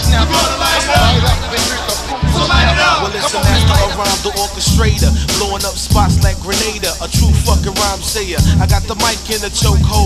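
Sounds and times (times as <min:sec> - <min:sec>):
drum beat with heavy kick drum: 0:00.0 - 0:10.0
hi-hats: 0:00.0 - 0:10.0
rapping over a beat: 0:00.0 - 0:10.0.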